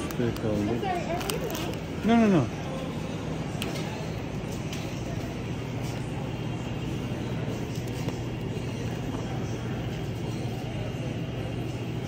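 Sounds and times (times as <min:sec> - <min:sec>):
supermarket background hum: 0:00.0 - 0:12.0.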